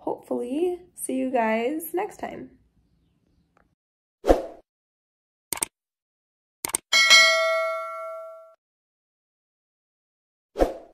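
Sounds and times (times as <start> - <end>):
bell-like chime: 6.9 - 8.6.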